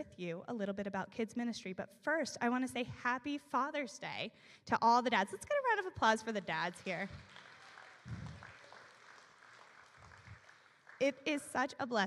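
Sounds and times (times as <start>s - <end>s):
audience applause: 6.9s - 11.0s.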